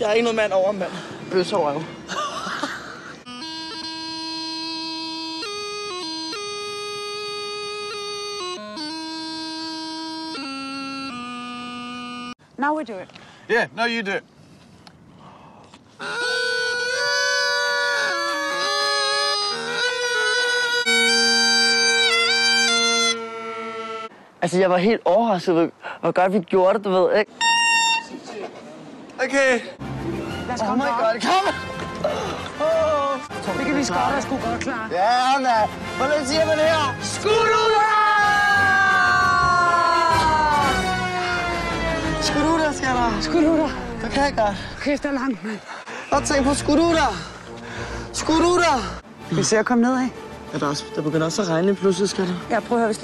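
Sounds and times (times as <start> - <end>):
bagpipe practice chanters: 3.2 - 12.4, 16.0 - 24.1, 27.4 - 28.2
bagpipes with drones: 3.2 - 12.4, 16.2 - 24.1, 40.5 - 43.8.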